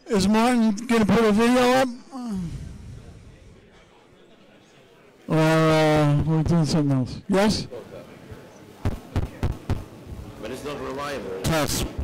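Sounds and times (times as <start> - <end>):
low room noise: 0.0 - 12.0
microphone tapping thumps: 8.8 - 9.9.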